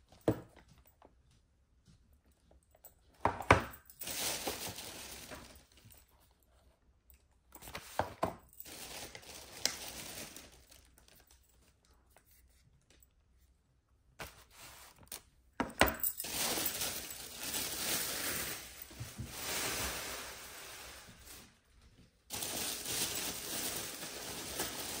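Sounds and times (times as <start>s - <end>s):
plastic bags rustling: 3.6s - 6.0s, 7.6s - 11.6s, 15.9s - 25.0s.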